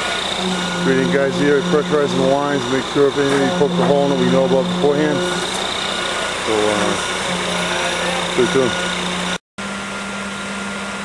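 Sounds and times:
truck engine droning: 0:00.0 - 0:09.4
man's voice: 0:00.8 - 0:05.4.

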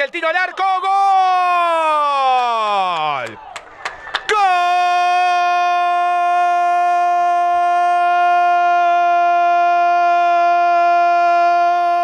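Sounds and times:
man shouting long goal cry: 0:00.2 - 0:03.3, 0:04.3 - 0:12.0.

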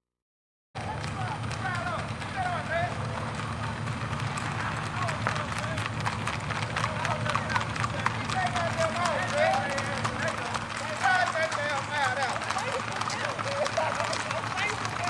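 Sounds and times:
hooves clattering on pavement: 0:00.8 - 0:15.0
people calling out: 0:00.8 - 0:15.0.

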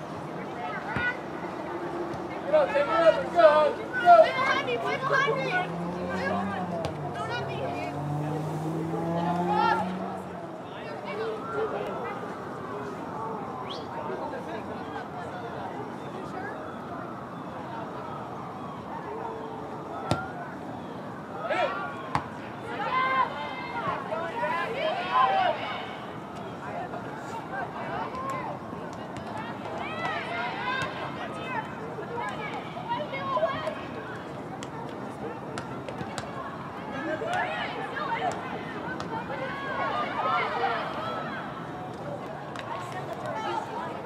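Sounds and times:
voices calling out: 0:00.0 - 0:44.0.

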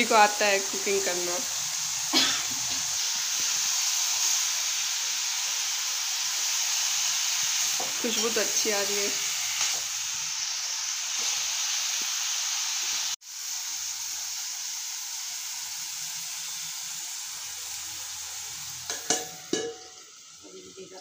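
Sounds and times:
greens sizzling in pan: 0:00.0 - 0:21.0.

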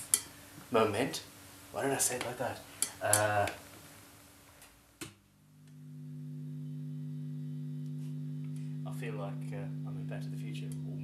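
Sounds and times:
electric guitar sustained note: 0:05.5 - 0:11.0
guitar pick attack: 0:05.5 - 0:11.0.

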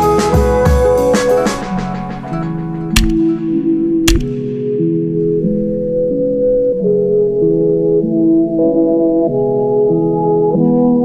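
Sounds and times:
background music with sustained notes: 0:00.0 - 0:11.0.

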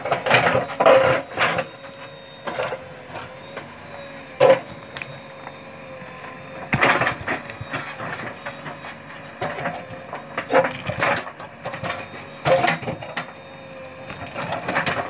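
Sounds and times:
backhoe engine whine: 0:00.0 - 0:15.0.

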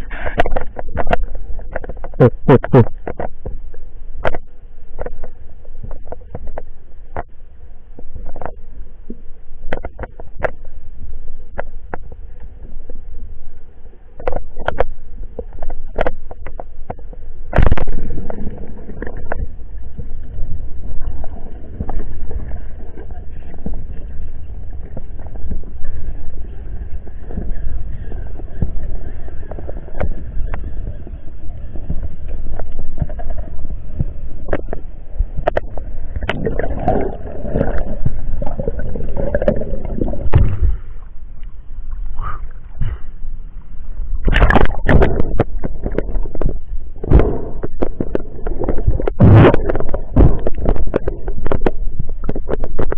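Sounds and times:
low underwater rumble: 0:00.0 - 0:52.9
water bubbling and gurgling: 0:00.0 - 0:52.9.

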